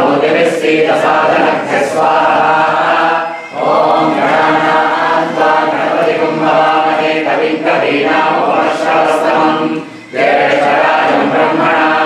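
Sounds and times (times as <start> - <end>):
group chanting mantras: 0.0 - 12.0.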